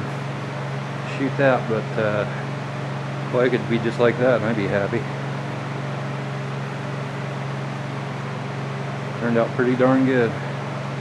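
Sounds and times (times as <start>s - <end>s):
box fans whooshing and humming: 0.0s - 11.0s.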